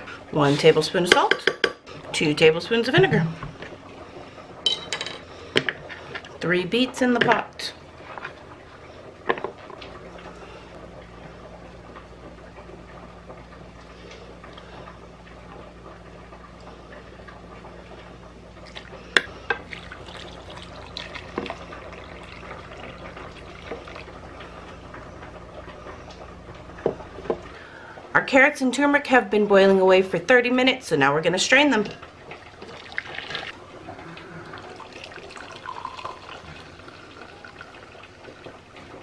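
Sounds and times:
steady low hum: 0.0 - 39.0
liquid pouring into saucepan: 19.6 - 24.2, 32.6 - 33.6, 34.6 - 38.8.

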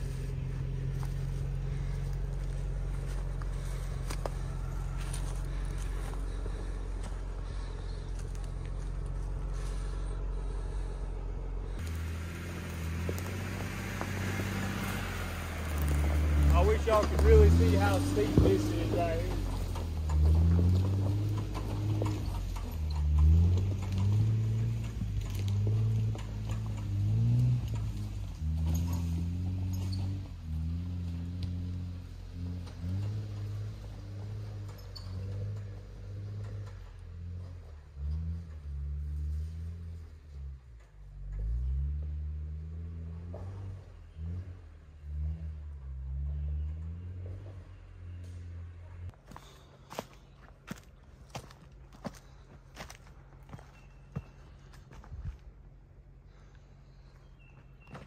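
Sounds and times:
off-road vehicle engine pulling: 0.0 - 58.0.

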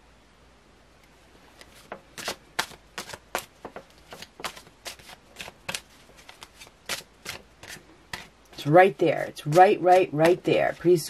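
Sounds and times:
cards being shuffled: 1.5 - 11.0.

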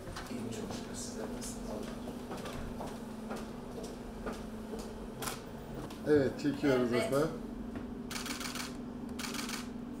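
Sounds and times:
camera shutters clicking: 8.1 - 9.7.

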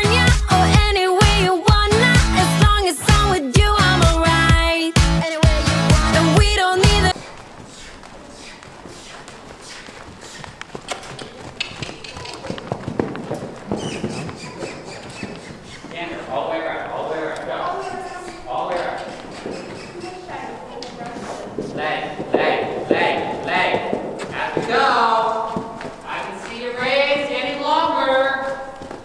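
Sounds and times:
horse hoofbeats on dirt: 6.9 - 29.0
voices talking: 13.7 - 28.6.

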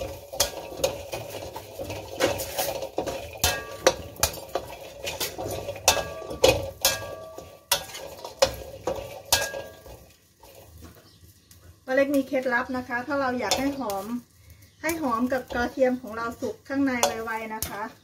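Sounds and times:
metal ladle scraping a wok: 0.0 - 11.3, 12.0 - 18.0.

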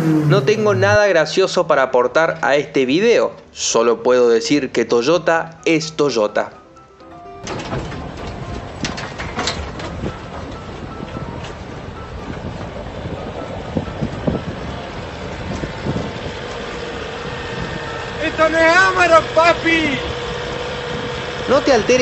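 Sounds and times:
tyres on gravel road: 2.2 - 22.0.

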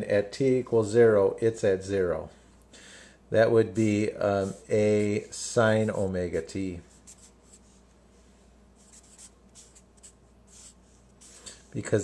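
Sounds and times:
marker writing on paper: 8.8 - 11.6.

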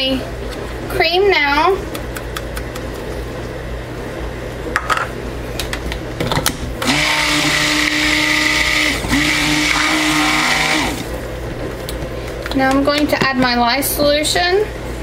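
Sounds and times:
stick blender motor hum: 6.8 - 11.2.

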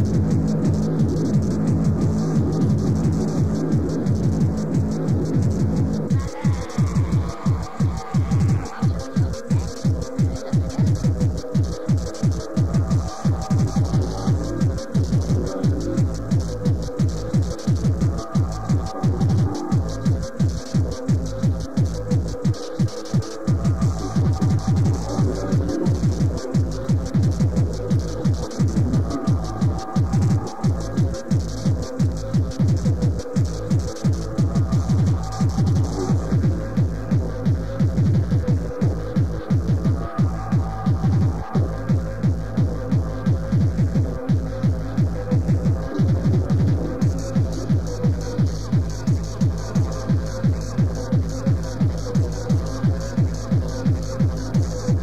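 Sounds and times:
droning synth tones: 0.0 - 55.0
heavy kick drum: 0.0 - 55.0
ticking hi-hats: 0.0 - 55.0.

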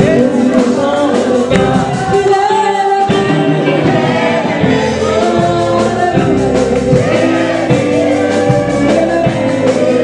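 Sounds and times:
congregation singing a gospel song: 0.0 - 10.0.

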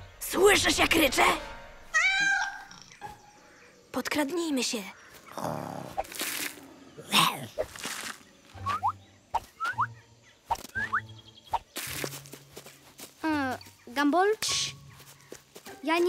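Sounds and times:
short chirping glides: 8.6 - 11.7.

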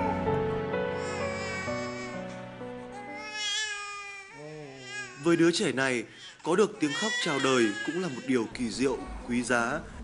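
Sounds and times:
soft background music: 0.0 - 9.8
infant crying: 0.9 - 5.6, 6.2 - 9.3.

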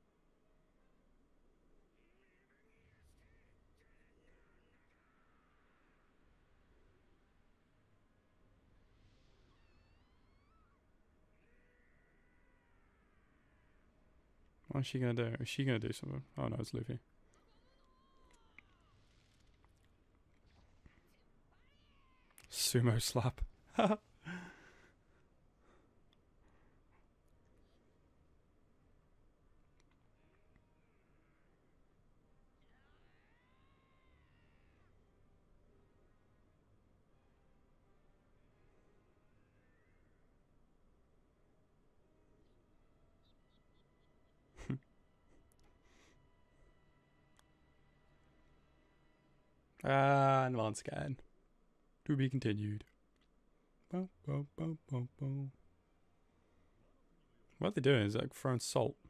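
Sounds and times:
low room hum: 0.0 - 59.0.

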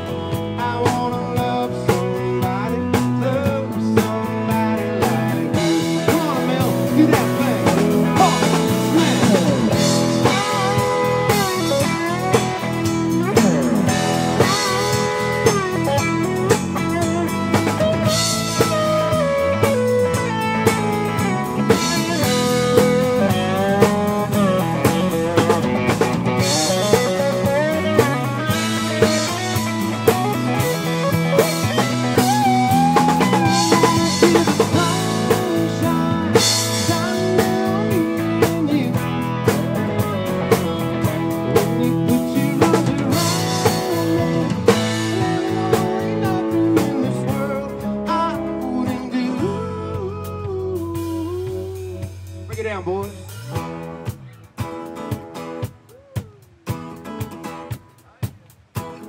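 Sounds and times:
bass guitar: 0.0 - 59.0
drum kit steady beat: 0.0 - 59.0
electric guitar lead line: 0.0 - 59.0.

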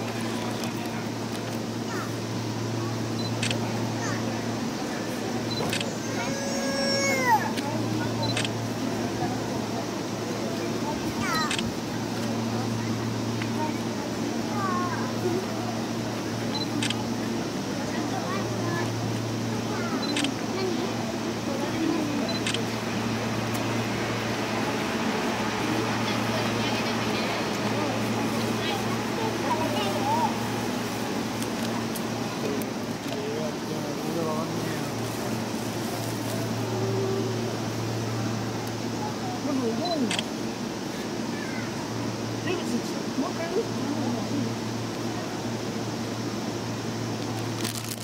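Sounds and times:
crowd talking quietly: 0.0 - 48.0
electric train humming: 0.0 - 48.0
camera focus beeps: 3.2 - 3.6, 5.5 - 5.9, 8.2 - 8.5, 11.5 - 11.7, 16.5 - 17.0, 20.0 - 20.4, 22.3 - 22.6, 39.8 - 40.3.

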